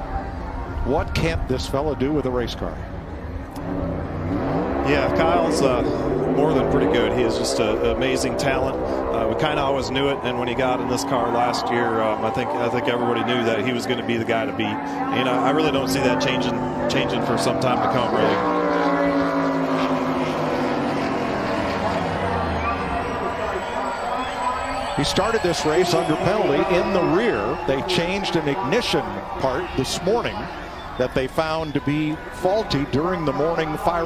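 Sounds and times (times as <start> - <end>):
race car engine revving: 3.3 - 34.0.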